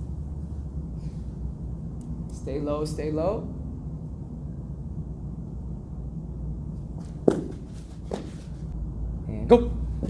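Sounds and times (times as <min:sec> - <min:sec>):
low room hum: 0:00.0 - 0:10.0
footfalls on artificial turf: 0:07.0 - 0:08.7.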